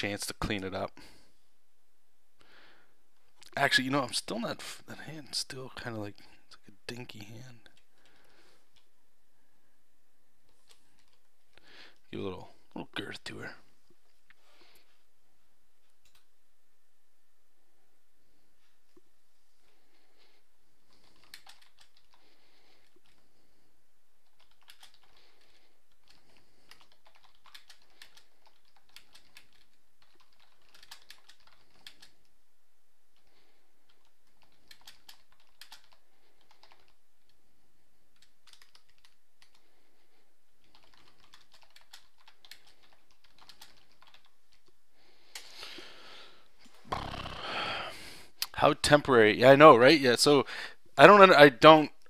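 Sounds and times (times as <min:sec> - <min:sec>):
computer keyboard typing: 0:10.7 - 0:11.2, 0:20.9 - 0:23.2, 0:24.2 - 0:32.3, 0:33.9 - 0:37.0, 0:38.1 - 0:39.7, 0:40.6 - 0:44.4.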